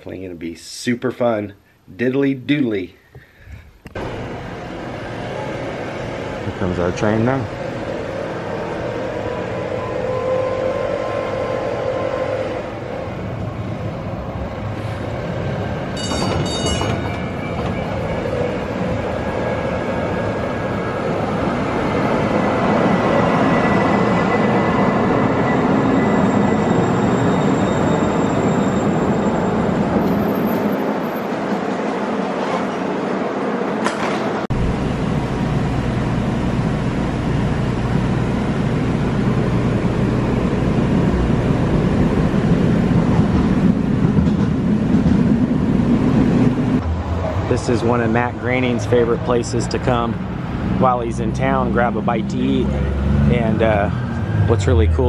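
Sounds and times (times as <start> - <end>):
light-rail train rumbling past: 4.0 - 55.0.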